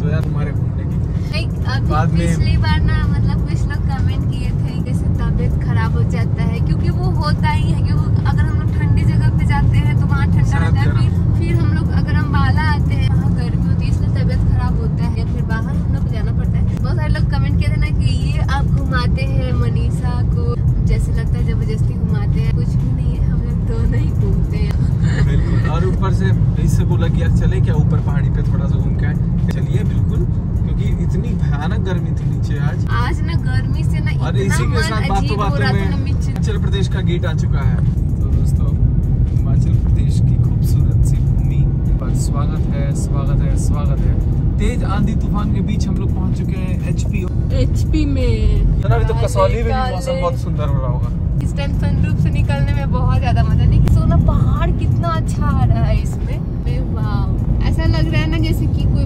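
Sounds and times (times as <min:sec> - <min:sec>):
people talking: 0:00.0 - 0:00.6, 0:01.2 - 0:38.7, 0:39.4 - 0:59.0
road and engine rumble in car: 0:00.0 - 0:59.0.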